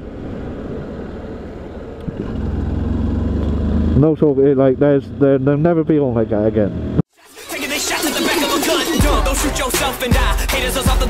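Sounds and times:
motorcycle engine accelerating: 0.8 - 7.0.

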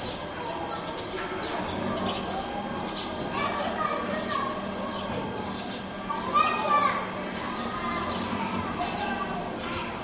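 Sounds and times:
overlapping voices outdoors: 0.0 - 10.0.

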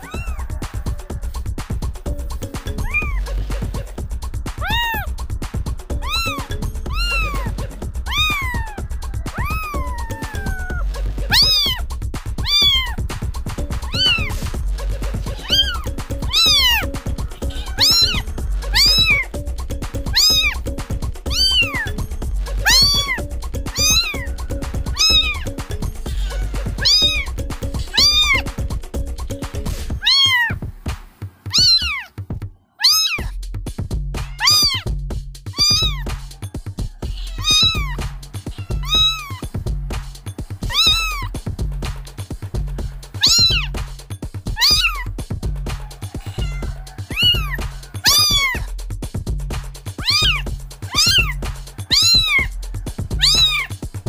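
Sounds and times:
kitten meowing: 0.0 - 1.3, 2.7 - 3.2, 4.6 - 5.1, 5.9 - 11.8, 12.4 - 13.0, 13.8 - 14.4, 15.4 - 19.3, 20.0 - 20.7, 21.3 - 22.0, 22.6 - 25.5, 26.1 - 28.5, 30.0 - 30.6, 31.5 - 32.1, 32.8 - 33.3, 34.2 - 34.9, 35.5 - 36.2, 37.0 - 39.6, 40.6 - 41.4, 43.2 - 43.8, 44.5 - 45.1, 46.1 - 48.7, 50.0 - 52.5, 53.2 - 53.8
background music with low beat: 0.0 - 32.6, 33.2 - 54.0.

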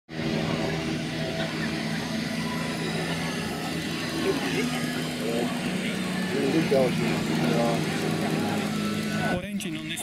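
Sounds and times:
engine hum: 0.1 - 10.0
people talking: 2.6 - 10.0.

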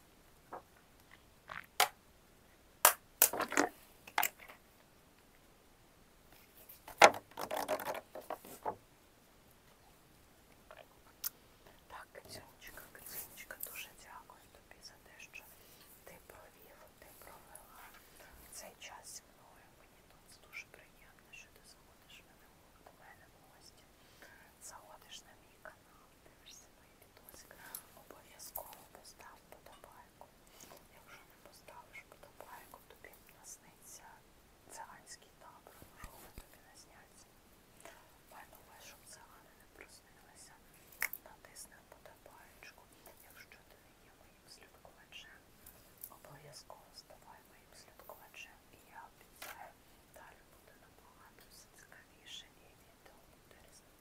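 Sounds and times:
woman whispering: 3.5 - 4.6, 10.6 - 54.0.

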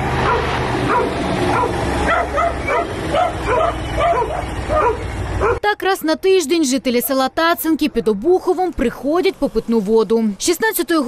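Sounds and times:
dog barking: 0.2 - 5.6.

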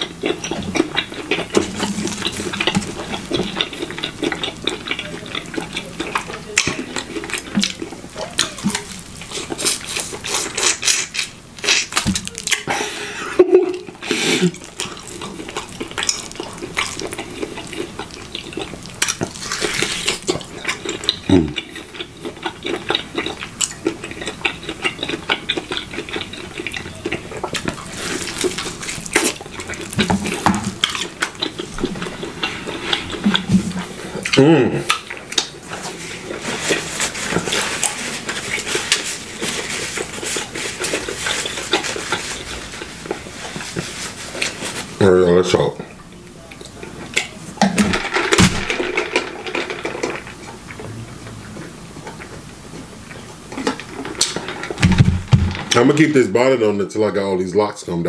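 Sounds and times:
close chewing with mouth clicks: 0.0 - 45.0, 45.6 - 55.8.

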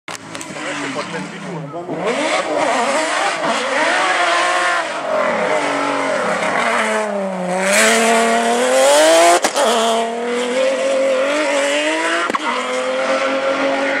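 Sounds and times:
grit and tyre noise: 0.1 - 14.0
rally car engine revving: 0.1 - 14.0.

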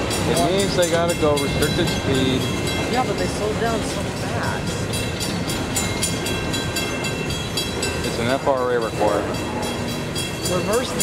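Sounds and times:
crossing bell ringing: 0.0 - 11.0
train wheels rumbling on rails: 0.0 - 11.0.

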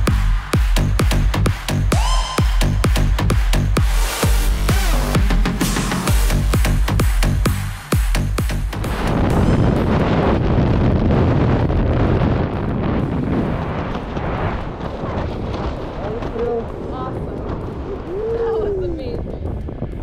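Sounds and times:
wind blasting across microphone: 8.8 - 20.0
person crying out: 18.1 - 19.0.

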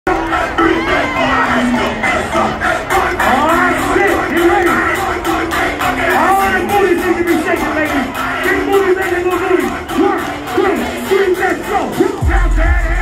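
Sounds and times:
crowd shouting and singing along: 0.1 - 13.0
hip-hop music with steady beat: 0.1 - 13.0.

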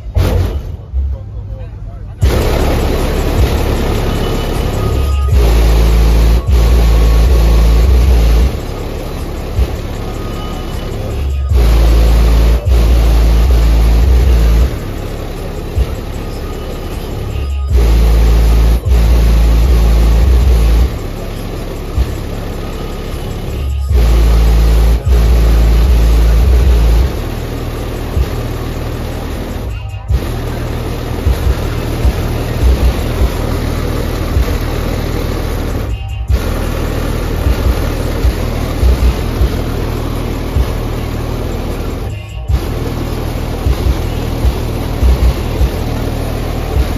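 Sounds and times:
bass-heavy music through subwoofers: 0.0 - 46.9.

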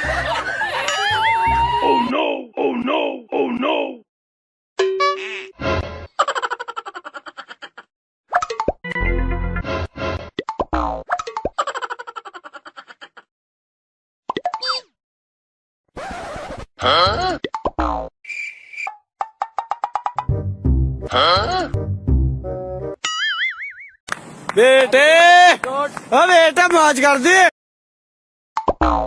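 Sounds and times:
music burst with deep bass: 20.2 - 21.1, 21.8 - 23.0.

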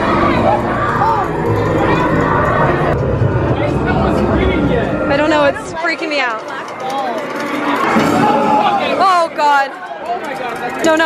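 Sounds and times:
people shouting and screaming: 0.0 - 5.7, 7.4 - 10.4.

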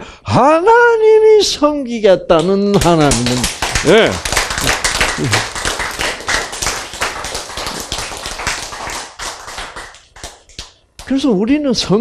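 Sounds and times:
small group clapping: 2.4 - 11.2.

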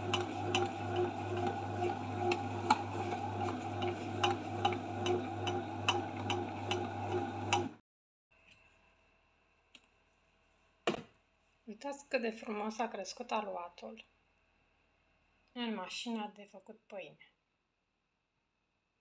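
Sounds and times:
bread maker motor humming: 0.0 - 7.8.

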